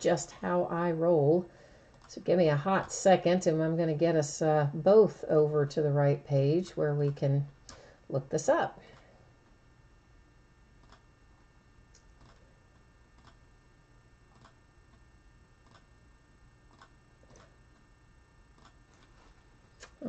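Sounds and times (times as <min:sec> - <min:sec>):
faint steady hum: 0:00.0 - 0:20.0
computer mouse clicks: 0:10.8 - 0:11.0, 0:12.0 - 0:12.4, 0:13.2 - 0:13.4, 0:15.6 - 0:15.9.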